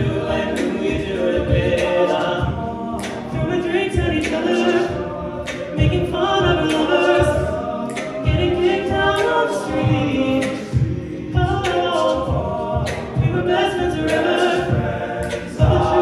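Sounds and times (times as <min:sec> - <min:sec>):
male a cappella group singing: 0:00.0 - 0:16.0
vocal percussion beat: 0:00.0 - 0:16.0.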